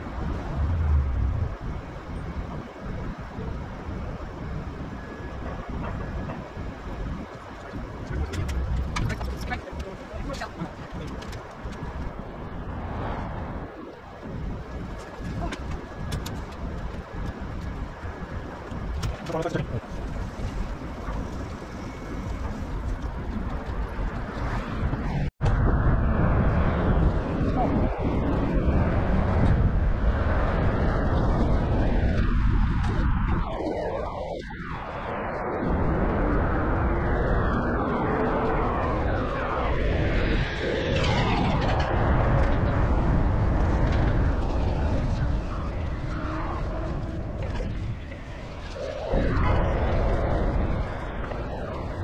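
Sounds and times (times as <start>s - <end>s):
city street traffic: 0.0s - 25.4s
wind rumble on microphone: 0.0s - 52.0s.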